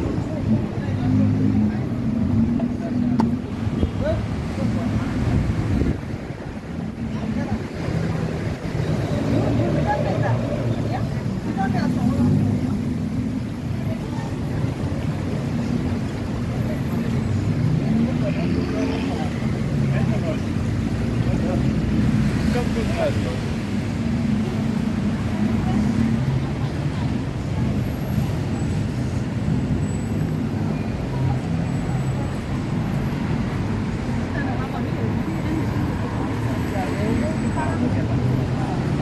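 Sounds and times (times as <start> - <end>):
people talking: 0.0 - 29.0, 30.4 - 39.0
road traffic rumble: 0.0 - 39.0.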